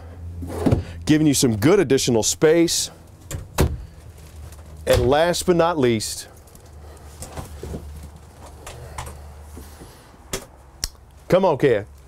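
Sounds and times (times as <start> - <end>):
wooden wardrobe door shutting: 3.3 - 3.9.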